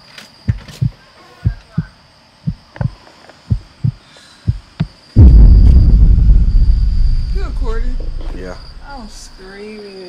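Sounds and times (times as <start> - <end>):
heartbeat thumps: 0.5 - 9.4
loud low rumble: 5.2 - 9.5.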